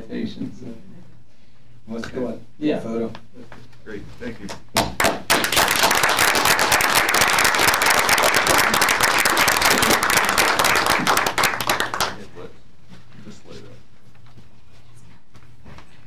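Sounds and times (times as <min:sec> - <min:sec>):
audience applauding: 0:05.0 - 0:12.3.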